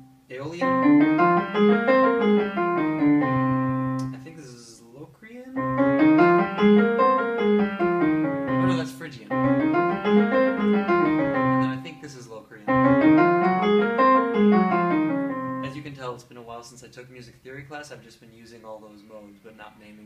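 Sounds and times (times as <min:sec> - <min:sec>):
digital piano playing scales: 0:00.0 - 0:04.3, 0:05.6 - 0:16.0.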